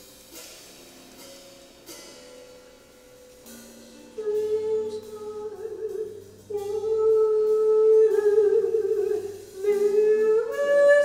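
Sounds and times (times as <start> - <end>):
cymbal strokes: 0.0 - 8.1.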